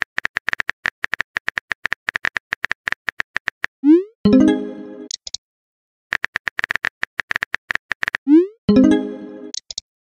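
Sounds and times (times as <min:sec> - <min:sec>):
rapid keyboard typing clicks: 0:00.0 - 0:03.7, 0:06.1 - 0:08.3.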